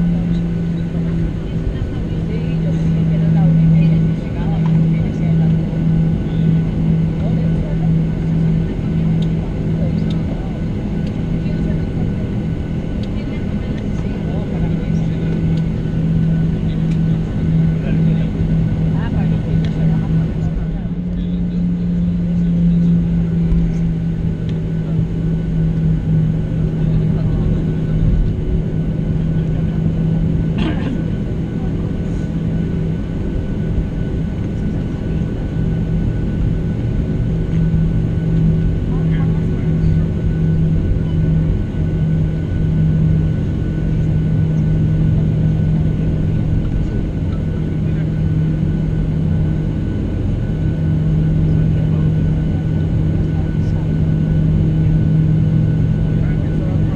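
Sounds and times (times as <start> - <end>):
aircraft engine drone: 0.0 - 56.9.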